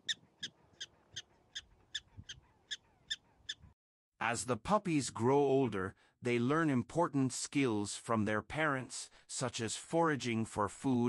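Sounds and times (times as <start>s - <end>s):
prairie dog barking: 0.0s - 3.7s.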